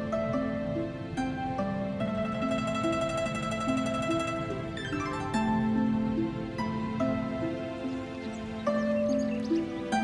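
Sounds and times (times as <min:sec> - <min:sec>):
plucked zither melody: 0:00.0 - 0:10.0.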